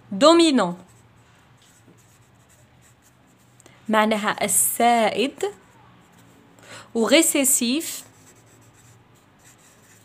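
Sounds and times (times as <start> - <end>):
low steady hum: 0.0 - 10.0
pen scratching on paper: 0.8 - 3.6, 7.8 - 10.0.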